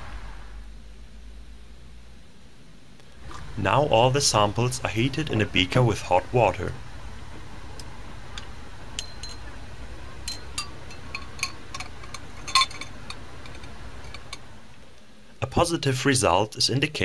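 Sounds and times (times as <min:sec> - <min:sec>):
steady low hum: 0:00.0 - 0:17.0
glass test tubes clinking: 0:08.4 - 0:09.5, 0:10.2 - 0:14.4.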